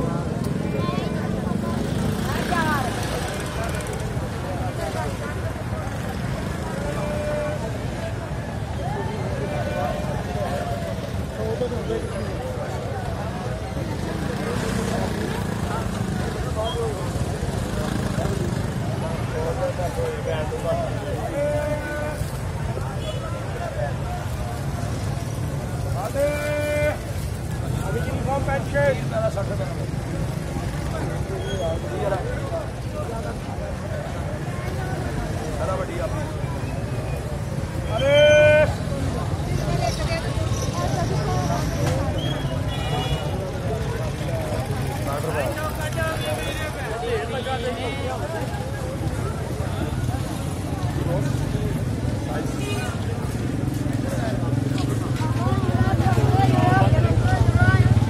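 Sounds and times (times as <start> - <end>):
crowd chatter: 0.0 - 58.0
low traffic rumble: 0.0 - 58.0
people talking: 0.0 - 58.0.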